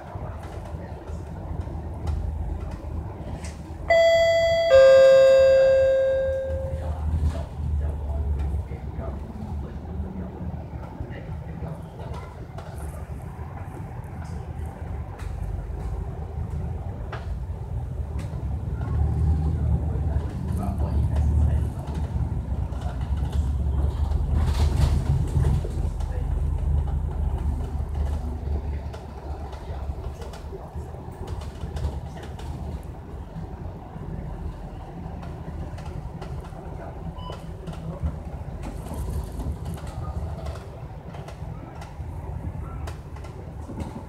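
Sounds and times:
bus engine and road rumble: 0:00.0 - 0:44.0
two-note bus bell chime: 0:03.9 - 0:07.0.

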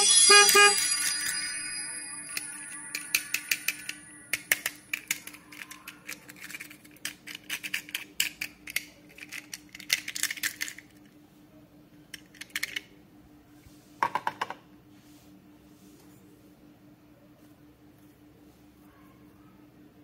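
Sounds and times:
toy parts clicking and rattling: 0:02.3 - 0:11.0, 0:12.1 - 0:12.9.

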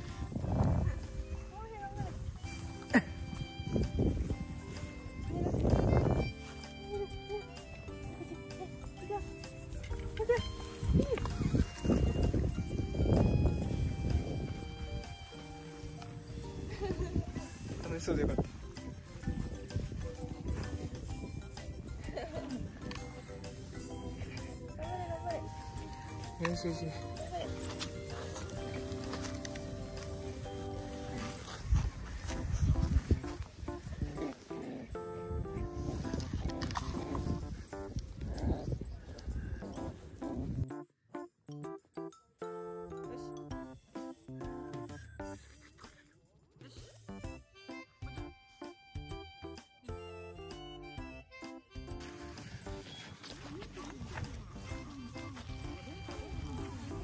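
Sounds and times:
running on dry grass: 0:00.0 - 0:40.6, 0:51.8 - 0:57.0
light background music: 0:00.0 - 0:57.0
puppies growling and grunting: 0:34.0 - 0:35.4.

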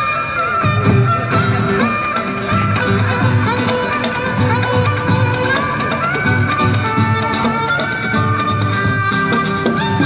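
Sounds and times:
two-string fiddle melody: 0:00.0 - 0:10.0.

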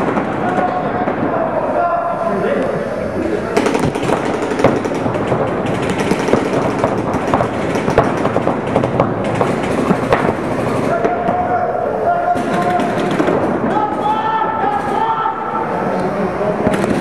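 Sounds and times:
people's voices: 0:00.0 - 0:17.0
paintball markers firing: 0:03.6 - 0:11.5, 0:12.4 - 0:15.2, 0:16.6 - 0:17.0.

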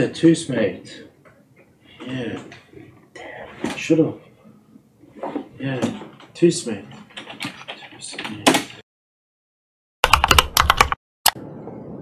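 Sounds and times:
faint room noise: 0:00.0 - 0:08.8
computer keyboard typing: 0:06.9 - 0:08.7, 0:10.0 - 0:11.0.

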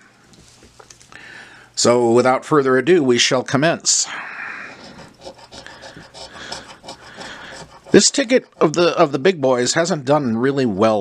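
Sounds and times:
coin scratching lottery ticket: 0:04.8 - 0:09.0.

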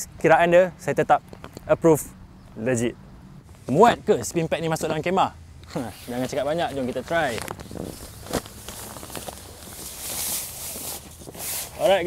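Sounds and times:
nylon fabric rustling and scraping: 0:05.7 - 0:12.0.

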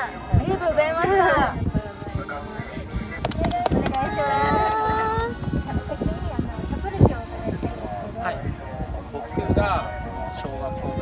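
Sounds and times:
people chatting: 0:00.0 - 0:11.0
light hand clapping: 0:03.2 - 0:05.4.

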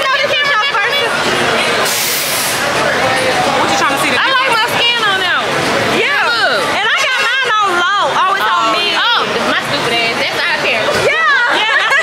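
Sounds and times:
women talking: 0:00.0 - 0:01.2, 0:03.6 - 0:12.0
background chatter: 0:00.0 - 0:12.0
short hiss: 0:01.8 - 0:02.7.

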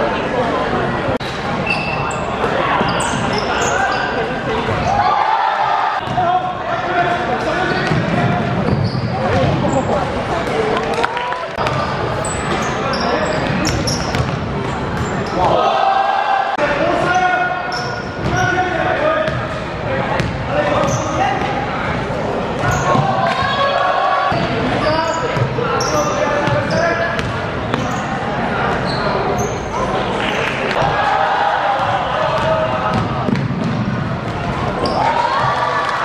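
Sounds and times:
sneaker squeaks: 0:01.2 - 0:05.1, 0:07.6 - 0:10.2, 0:11.6 - 0:15.5, 0:17.1 - 0:18.7, 0:20.2 - 0:21.5, 0:22.6 - 0:23.6, 0:24.3 - 0:30.6, 0:34.8 - 0:35.6
basketball bouncing on wooden court: 0:13.6 - 0:14.4, 0:26.4 - 0:27.8, 0:31.8 - 0:34.0.

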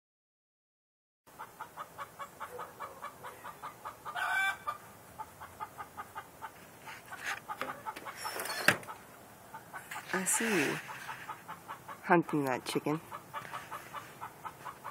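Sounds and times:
chicken clucking: 0:01.3 - 0:14.9.

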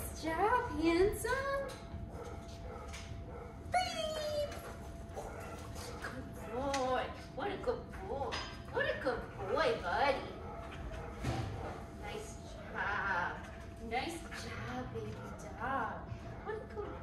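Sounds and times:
woman praising excitedly: 0:03.7 - 0:04.6.

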